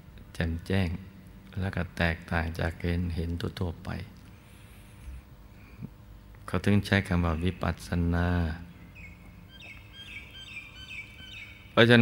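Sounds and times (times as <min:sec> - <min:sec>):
small bird chirping: 0:08.5 - 0:12.0.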